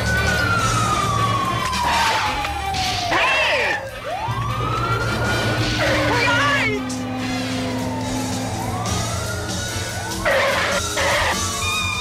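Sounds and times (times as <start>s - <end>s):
police siren wailing: 0.0s - 12.0s
low engine rumble: 4.1s - 10.3s.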